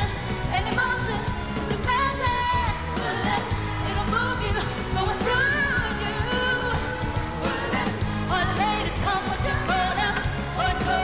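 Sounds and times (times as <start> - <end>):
backing track with beat and bass: 0.0 - 11.0
woman singing pop song: 0.0 - 11.0.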